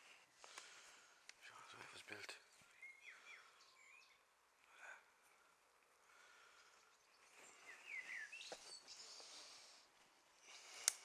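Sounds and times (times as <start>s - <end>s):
faint rustling of moss and stone: 0.0s - 11.0s
bird chirps: 2.5s - 4.3s, 6.7s - 9.7s.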